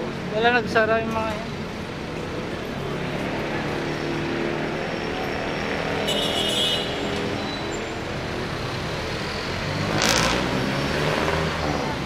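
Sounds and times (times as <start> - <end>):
vehicle engines running: 0.0 - 12.0.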